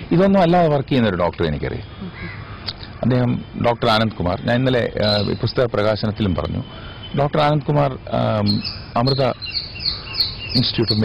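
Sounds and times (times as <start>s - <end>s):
crow cawing: 1.9s - 3.2s, 8.6s - 10.5s
man speaking: 3.0s - 9.4s, 10.6s - 11.0s.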